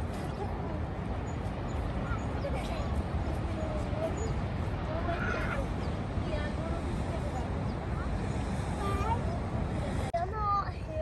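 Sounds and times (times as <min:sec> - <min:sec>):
distant voices: 0:00.0 - 0:11.0
steady low rumble: 0:00.0 - 0:11.0.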